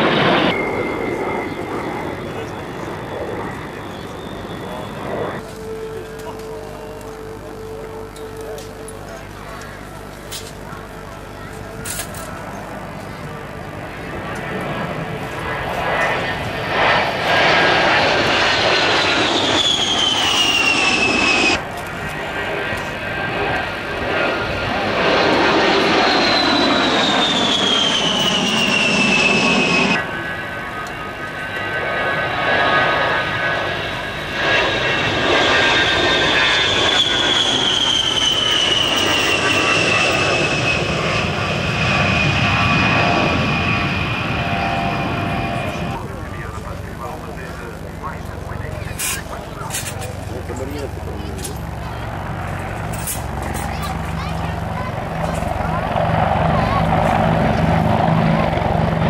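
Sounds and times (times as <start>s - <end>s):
rushing jet noise: 0.0s - 5.8s, 14.4s - 30.3s, 31.6s - 51.5s
jet engine whine: 0.0s - 59.0s.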